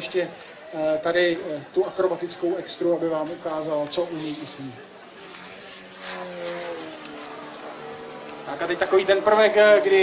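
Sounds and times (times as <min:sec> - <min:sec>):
model plane engine droning: 0:05.2 - 0:10.0.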